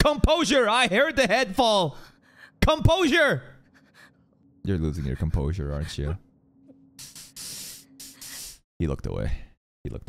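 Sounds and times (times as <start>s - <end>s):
person breathing through teeth: 7.0s - 8.6s.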